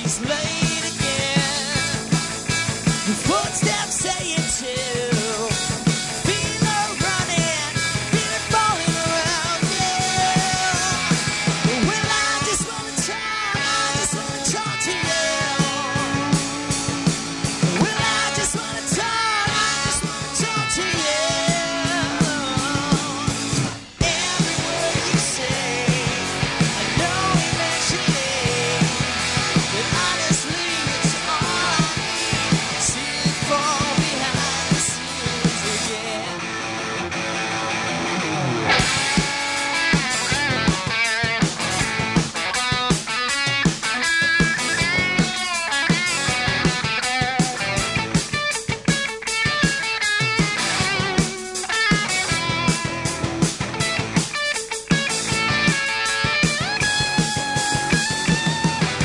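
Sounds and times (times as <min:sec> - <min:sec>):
rock band playing live: 0:00.0 - 0:59.0
drum hits: 0:38.7 - 0:59.0.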